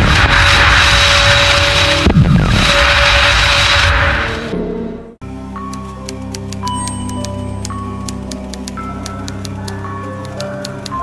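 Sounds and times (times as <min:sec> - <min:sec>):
loud rushing whoosh: 0:00.0 - 0:04.6
sudden impact hit: 0:00.0 - 0:05.1.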